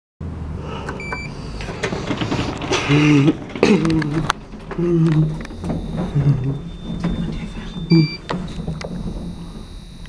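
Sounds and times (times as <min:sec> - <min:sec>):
low steady hum: 0:02.7 - 0:10.0
short electronic beep: 0:05.6 - 0:08.4.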